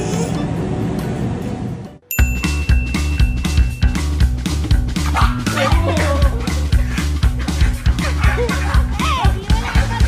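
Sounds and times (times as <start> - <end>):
background music with a beat: 2.1 - 10.0
dogs yipping and barking: 5.0 - 6.6, 7.3 - 10.0.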